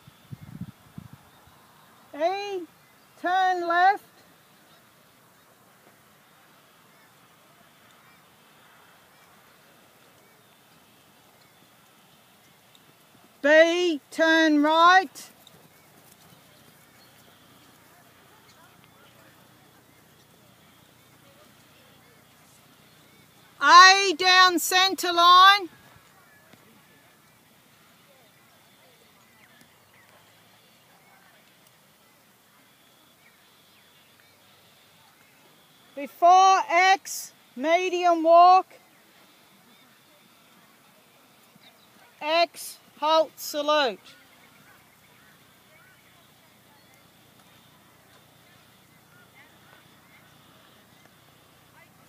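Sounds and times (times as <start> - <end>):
faint outdoor hiss: 0.0 - 52.0.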